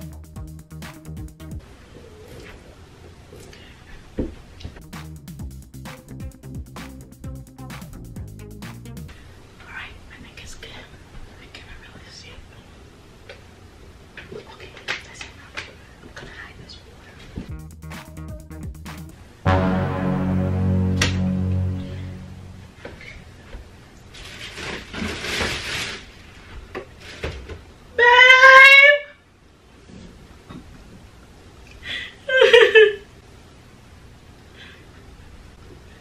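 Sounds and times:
woman whispering: 9.6 - 12.6, 16.2 - 16.9
plastic bags rustling: 24.2 - 26.1.

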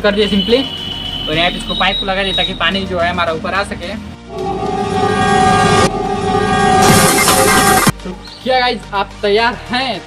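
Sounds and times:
loud horn-like blast: 4.3 - 7.9.

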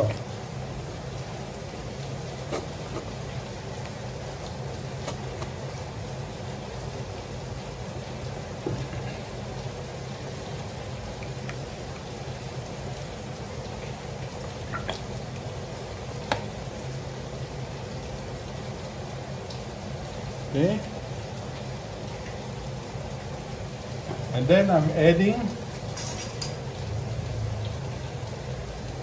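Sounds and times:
low hum and hiss: 0.0 - 29.0.

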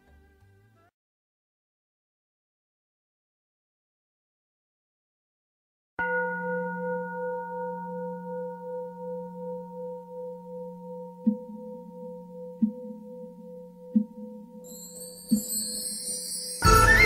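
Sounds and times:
singing bowl ringing: 6.0 - 17.0
high shimmering music: 11.5 - 17.0.

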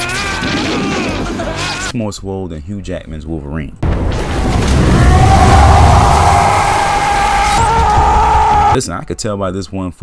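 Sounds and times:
man screaming: 4.9 - 8.8.

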